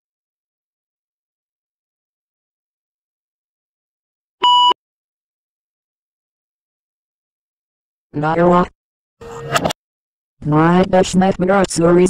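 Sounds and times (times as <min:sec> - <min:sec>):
short electronic beep: 0:04.4 - 0:04.8.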